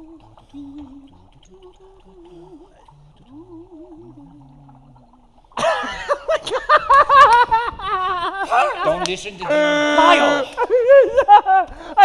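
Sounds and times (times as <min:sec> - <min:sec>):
faint low held tones: 0:00.0 - 0:05.8
man laughing loudly: 0:05.6 - 0:11.7.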